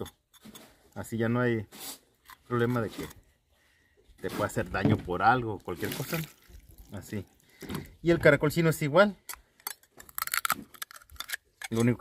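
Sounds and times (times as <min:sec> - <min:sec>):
knife scraping a snail shell: 0:00.0 - 0:00.8, 0:01.7 - 0:03.3, 0:09.2 - 0:12.0.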